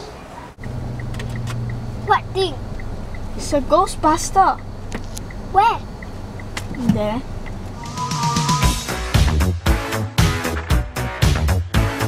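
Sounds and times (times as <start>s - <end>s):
engine and road drone: 0.0s - 12.0s
faint high ticks: 0.6s - 1.9s, 2.7s - 7.8s.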